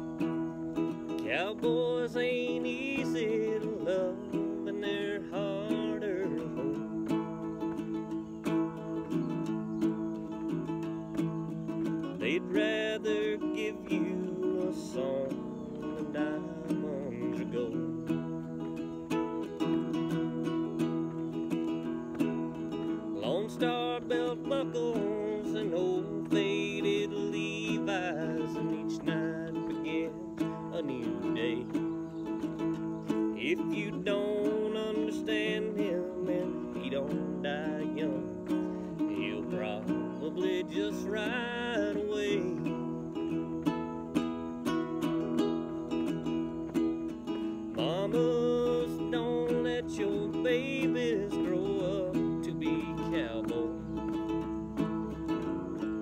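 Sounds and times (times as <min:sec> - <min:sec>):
acoustic guitar strumming: 0:00.0 - 0:56.0
man singing: 0:00.0 - 0:56.0.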